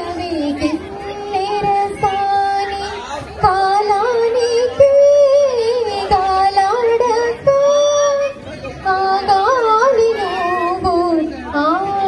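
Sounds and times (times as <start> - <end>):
woman singing into microphone: 0.0 - 12.0.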